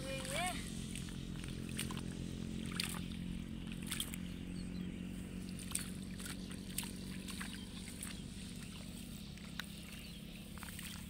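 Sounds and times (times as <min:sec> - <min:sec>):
low hum: 0:00.0 - 0:11.0
splashes and squelches in mud: 0:00.0 - 0:11.0.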